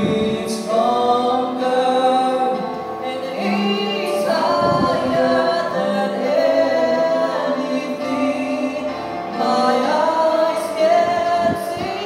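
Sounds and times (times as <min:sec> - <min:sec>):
two men singing: 0:00.0 - 0:12.0.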